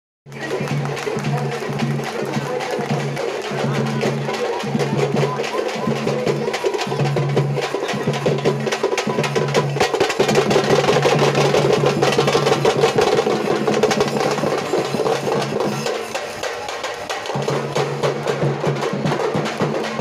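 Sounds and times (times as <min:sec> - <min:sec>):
drums beaten fast: 0:00.3 - 0:20.0.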